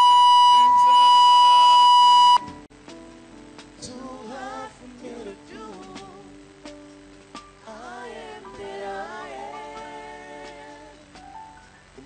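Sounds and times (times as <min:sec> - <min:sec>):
loud high-pitched tone: 0:00.0 - 0:02.5
worship music: 0:02.5 - 0:12.0.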